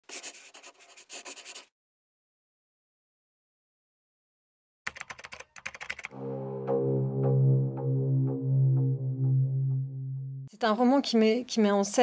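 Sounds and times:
pen scratching on paper: 0.0s - 1.7s.

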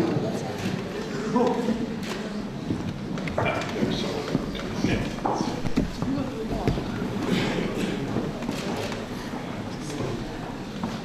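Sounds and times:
faint voices murmuring: 0.0s - 11.0s
footsteps on hard floor: 2.6s - 7.3s.

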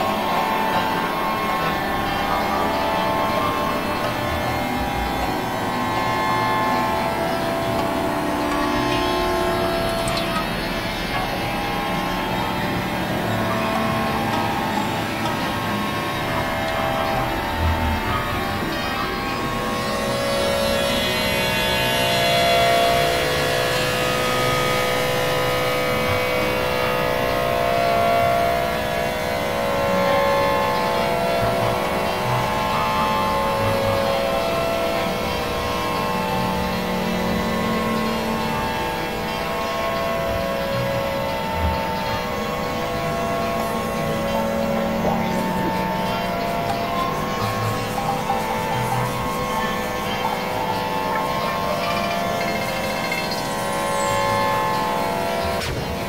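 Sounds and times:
layered drone tones and noise: 0.0s - 56.0s
sustained mid-pitched tones: 0.0s - 56.0s.

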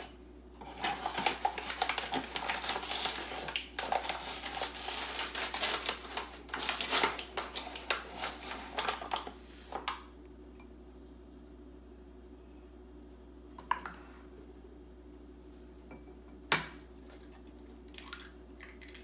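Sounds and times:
paper bag rustling and crinkling: 0.0s - 9.9s
cup scooping sugar: 0.6s - 9.9s.

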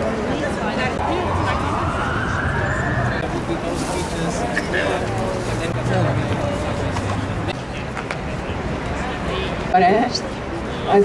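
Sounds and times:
street noise: 0.0s - 11.0s
voices: 0.0s - 11.0s
siren wailing: 0.9s - 3.5s.

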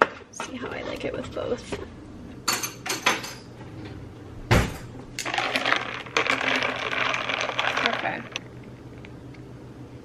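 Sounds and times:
cabinet door shutting thud: 4.5s - 4.9s.

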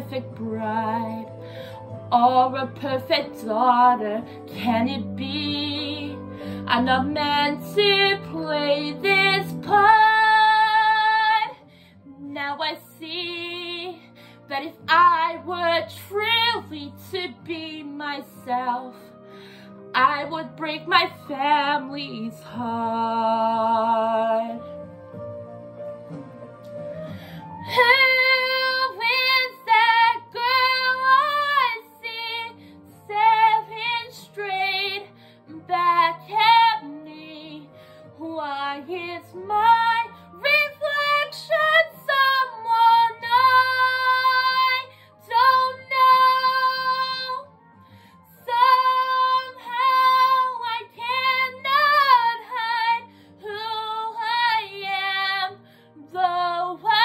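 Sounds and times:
woman singing a slow ballad: 0.0s - 24.8s, 27.4s - 47.6s, 48.2s - 57.0s
soft backing track: 0.0s - 57.0s.

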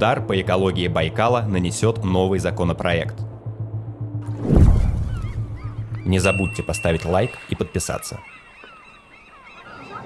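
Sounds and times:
birds chirping: 4.7s - 10.0s.

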